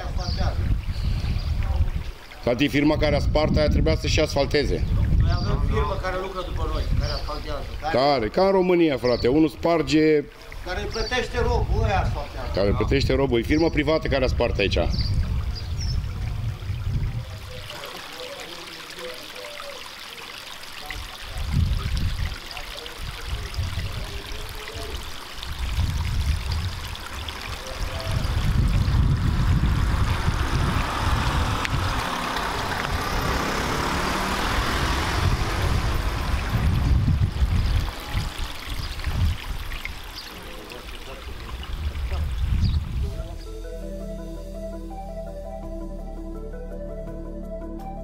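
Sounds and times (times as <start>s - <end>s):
low rumbles: 10.5s - 17.8s, 24.9s - 48.0s
steady rushing noise: 28.1s - 38.4s.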